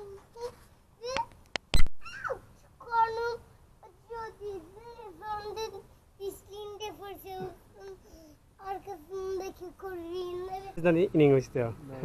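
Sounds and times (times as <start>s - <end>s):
child singing: 0.0s - 1.3s, 2.8s - 10.8s.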